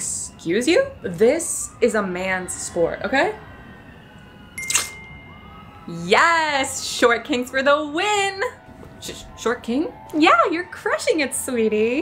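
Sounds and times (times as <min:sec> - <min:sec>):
sharp hit: 0:04.6 - 0:05.3
high ringing tone: 0:04.6 - 0:05.8.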